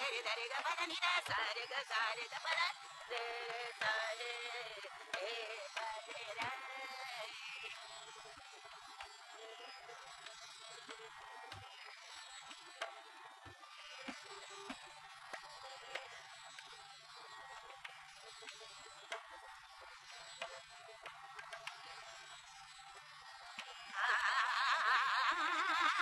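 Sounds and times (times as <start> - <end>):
person singing: 0.0 - 7.7
tanpura drone: 0.0 - 26.0.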